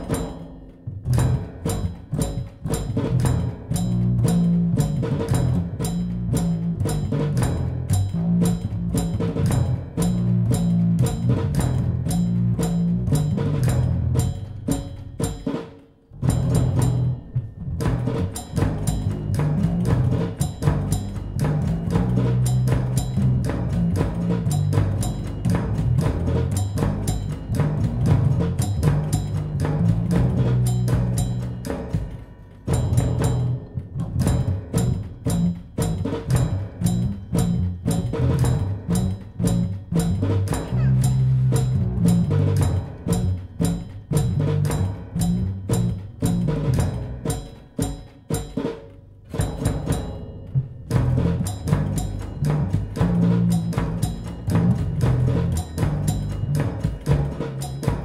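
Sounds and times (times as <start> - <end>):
mechanical band playing tango: 0.0 - 49.0, 50.6 - 58.0
machine-struck drums: 0.0 - 58.0
moving bass line: 0.9 - 14.9, 32.8 - 47.2.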